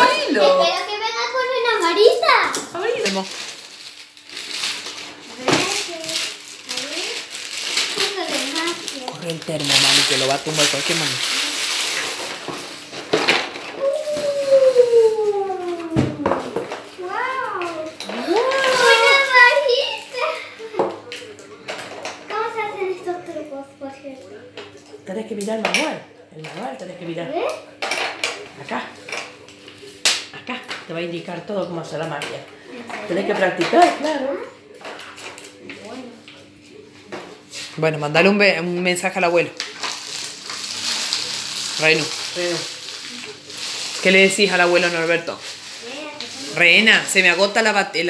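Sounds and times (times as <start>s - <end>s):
rustling and clicks of plastic pieces: 2.5s - 14.6s, 39.6s - 46.8s
faint voices: 13.7s - 25.0s
child's excited cries: 13.8s - 16.5s, 18.2s - 20.0s.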